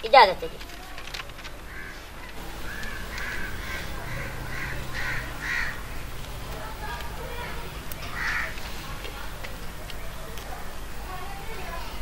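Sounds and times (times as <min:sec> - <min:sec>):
crow cawing: 0:01.7 - 0:06.0, 0:08.1 - 0:08.6.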